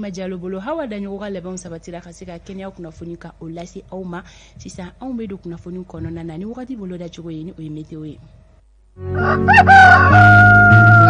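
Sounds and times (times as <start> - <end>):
music jingle: 9.0 - 11.0
rooster crowing: 9.0 - 11.0.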